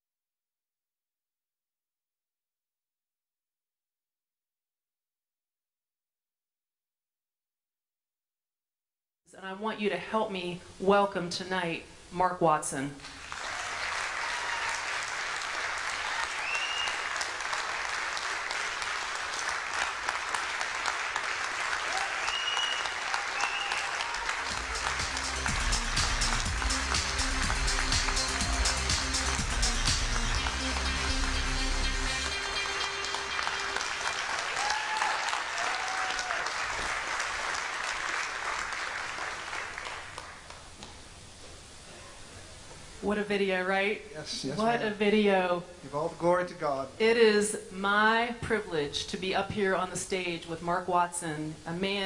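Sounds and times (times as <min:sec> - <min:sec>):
audience applauding and cheering: 0:13.0 - 0:40.7.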